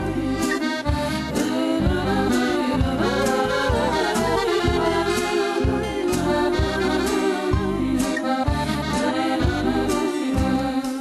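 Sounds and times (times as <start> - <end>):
instrumental band music: 0.0 - 11.0.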